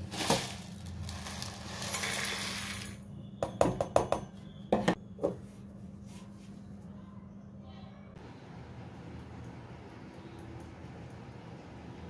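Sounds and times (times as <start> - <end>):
seeds rattling into metal jar: 0.0 - 3.0.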